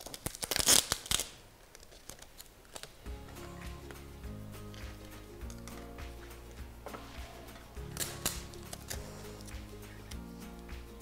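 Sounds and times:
packing tape ripping off roll: 0:00.0 - 0:03.0, 0:06.9 - 0:10.2.

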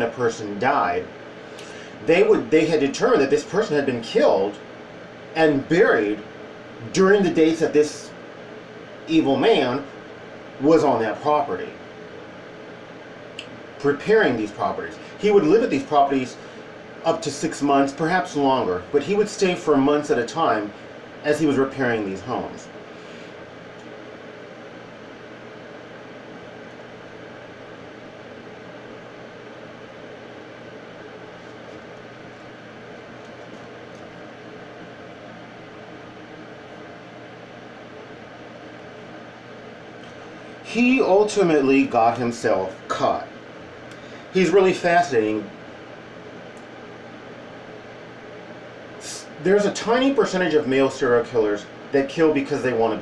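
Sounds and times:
room tone hiss: 0:00.0 - 0:53.0
background hiss: 0:47.4 - 0:53.0.

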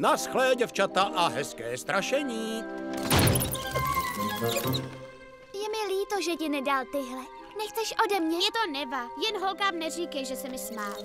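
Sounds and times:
background music with held tones: 0:00.0 - 0:11.0
heavy wooden door shutting: 0:02.8 - 0:05.1.

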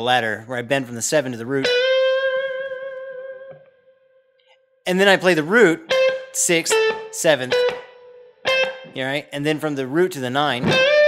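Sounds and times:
electric guitar bent note: 0:10.6 - 0:11.0.

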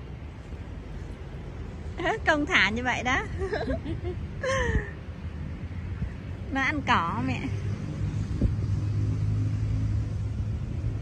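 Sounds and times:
engine running low drone: 0:00.0 - 0:11.0.

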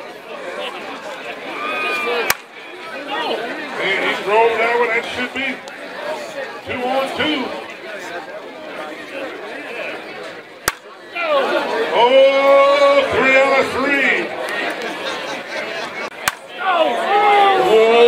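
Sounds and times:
men chattering: 0:00.0 - 0:18.0
bat hitting ball: 0:02.2 - 0:02.5, 0:10.6 - 0:10.9, 0:16.1 - 0:16.5.

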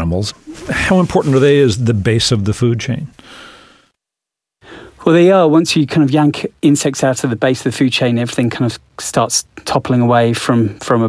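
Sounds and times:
person speaking: 0:00.0 - 0:03.2
person breathing softly: 0:03.2 - 0:04.0, 0:04.6 - 0:05.0.

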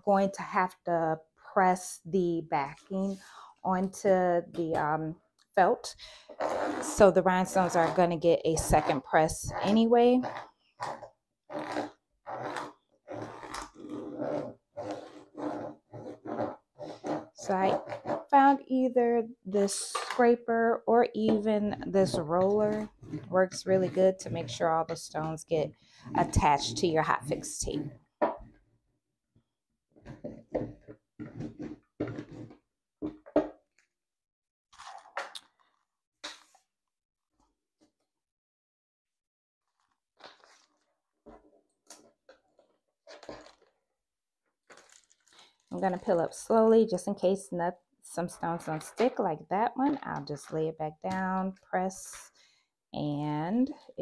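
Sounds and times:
plastic scraper scraping tape: 0:06.2 - 0:18.5, 0:21.3 - 0:27.6, 0:39.6 - 0:43.8.

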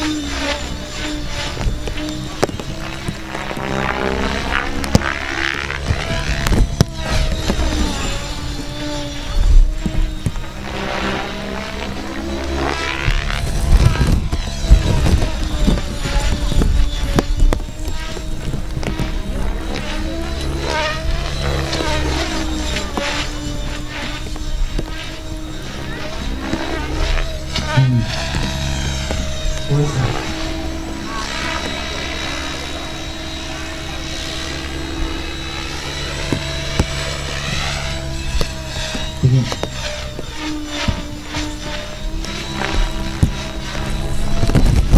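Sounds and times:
model helicopter rotor and motor: 0:00.0 - 0:44.9.

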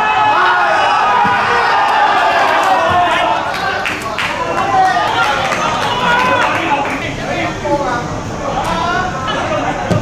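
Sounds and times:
voices calling out: 0:00.0 - 0:09.9.

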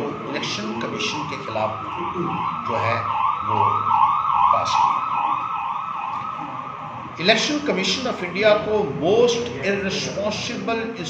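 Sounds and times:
siren yelping: 0:00.0 - 0:08.3.

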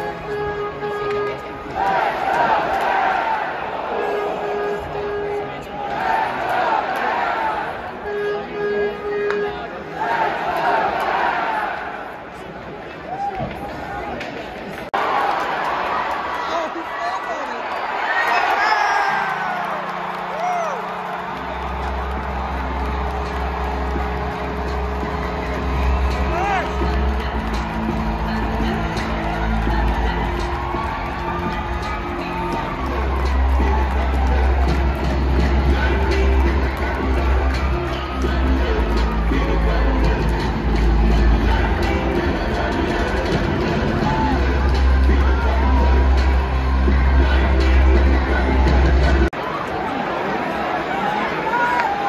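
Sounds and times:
crowd cheering and whooping: 0:15.0 - 0:52.0
arena music with heavy bass beat: 0:20.2 - 0:49.3.

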